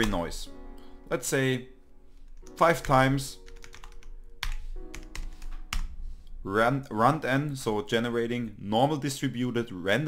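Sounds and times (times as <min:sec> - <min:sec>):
keyboard typing clicks: 0:02.2 - 0:06.0.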